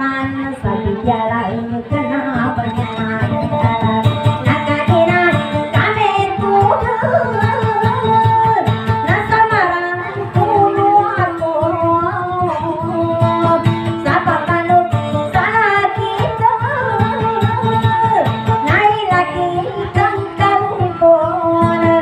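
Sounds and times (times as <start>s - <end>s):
strummed acoustic guitar: 0.0s - 22.0s
woman singing: 0.0s - 22.0s.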